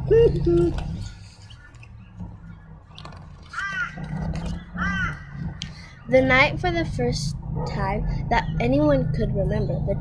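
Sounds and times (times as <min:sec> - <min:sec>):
bird calling: 0:00.0 - 0:06.2.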